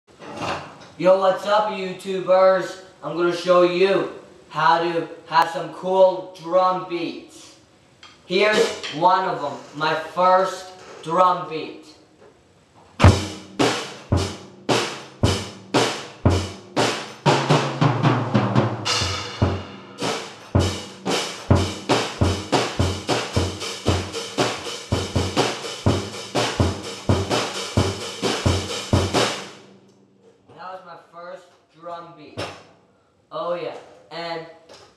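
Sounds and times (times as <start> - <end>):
drum kit beat: 8.4 - 8.9, 13.0 - 29.9.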